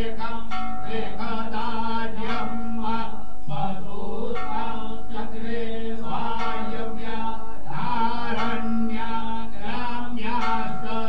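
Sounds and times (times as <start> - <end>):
person chanting: 0.0 - 11.0
steady sustained drone: 0.0 - 11.0.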